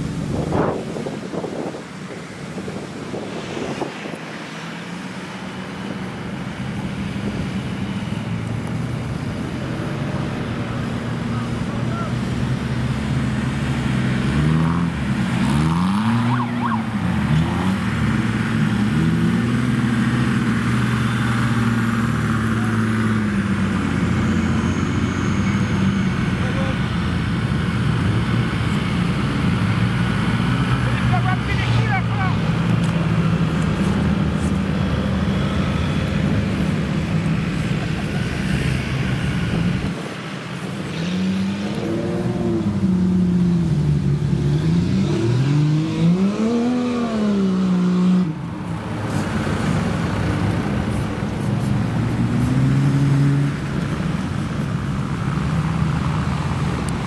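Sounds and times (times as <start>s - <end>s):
off-road engines revving: 0.0s - 57.0s.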